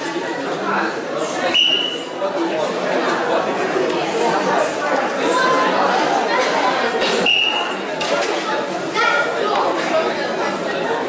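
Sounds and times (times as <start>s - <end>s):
crowd chatter in hall: 0.0s - 11.0s.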